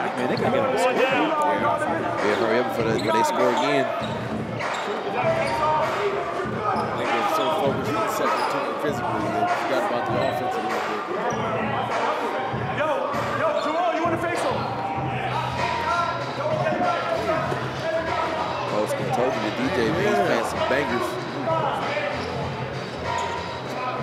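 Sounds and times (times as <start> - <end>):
voices echoing in hall: 0.0 - 24.0.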